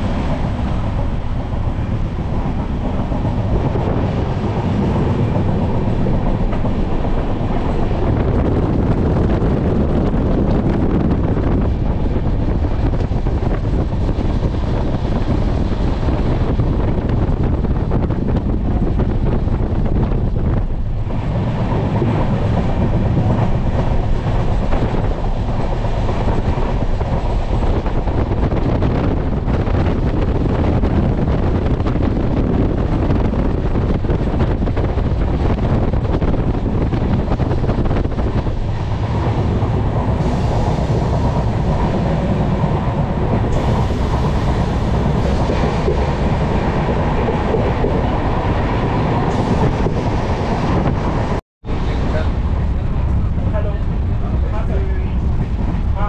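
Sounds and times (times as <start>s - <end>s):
train rumble: 0.0s - 56.0s.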